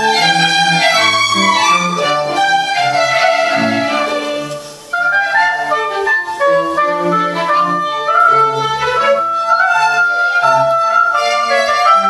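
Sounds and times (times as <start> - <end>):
string orchestra with clarinet: 0.0 - 12.0.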